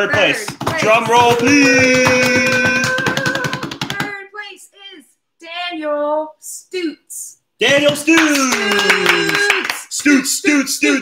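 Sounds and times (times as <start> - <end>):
hands drumming on tabletop: 0.0 - 4.2.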